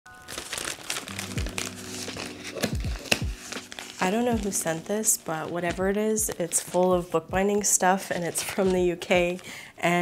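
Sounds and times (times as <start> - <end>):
plastic packaging crinkling: 0.1 - 6.9, 7.6 - 9.6
music with deep bass hits: 1.2 - 3.5.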